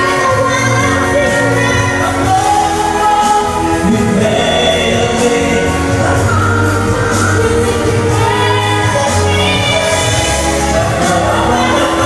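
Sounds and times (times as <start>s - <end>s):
instrumental accompaniment: 0.0s - 12.0s
steady bass line: 0.0s - 12.0s
women singing into microphones: 0.0s - 12.0s.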